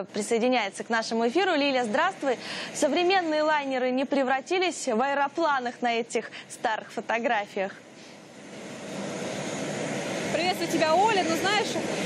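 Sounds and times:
airliner engine rushing: 5.8s - 12.0s.

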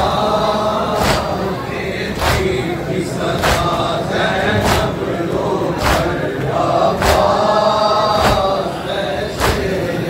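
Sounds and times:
crowd chanting: 0.0s - 10.0s
chest-beating slaps: 1.0s - 1.4s, 2.2s - 2.5s, 3.4s - 3.8s, 4.6s - 5.0s, 5.8s - 6.2s, 7.0s - 7.4s, 8.2s - 8.6s, 9.4s - 9.8s.

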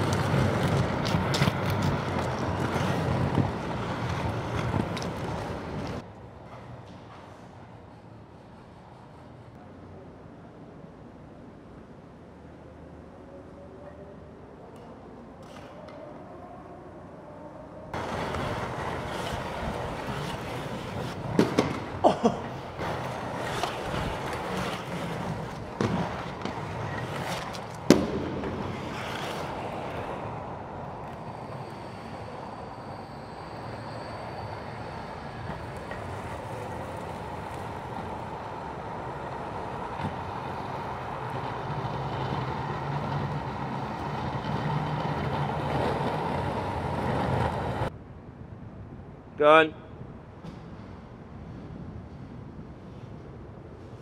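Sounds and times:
sharp clacks of skates: 0.0s - 9.5s, 18.0s - 47.9s
skate wheels rolling on concrete: 0.0s - 9.6s, 17.9s - 48.0s.

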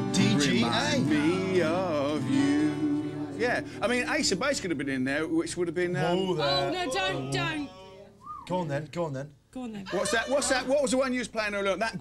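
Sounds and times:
man singing: 0.0s - 3.7s, 5.9s - 8.2s
strummed acoustic guitar: 0.0s - 4.8s.

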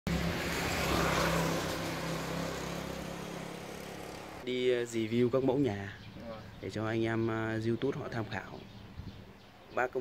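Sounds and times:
vehicle passing by: 0.1s - 4.4s.

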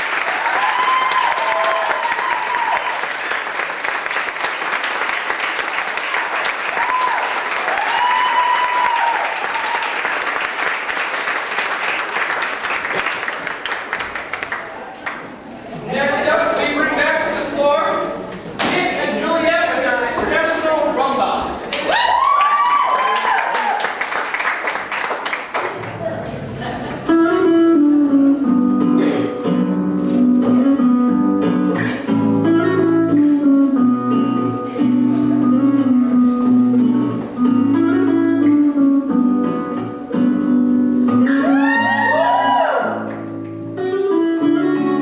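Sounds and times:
audience clapping: 0.0s - 15.4s, 21.6s - 26.1s
cheering shouts: 0.3s - 3.1s, 6.7s - 10.0s, 21.8s - 24.0s, 41.3s - 43.1s.

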